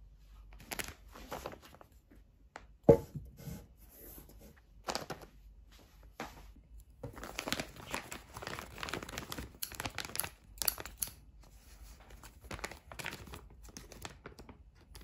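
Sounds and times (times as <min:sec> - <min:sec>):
plastic bag crinkling: 0:07.1 - 0:11.0, 0:12.0 - 0:15.0
scissors cutting plastic: 0:08.8 - 0:11.2.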